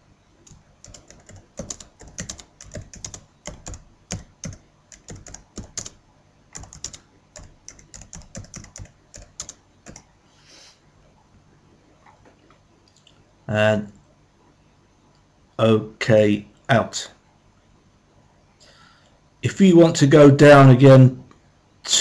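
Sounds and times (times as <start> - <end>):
computer keyboard typing: 0.4 - 10.1.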